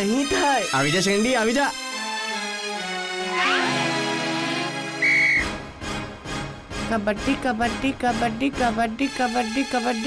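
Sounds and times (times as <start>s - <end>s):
loud whistle blast: 5.0s - 5.6s.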